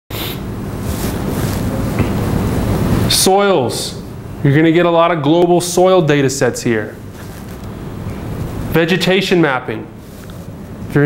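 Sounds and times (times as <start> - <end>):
faint hum: 0.1 - 11.0
low rumbling room noise: 0.1 - 11.0.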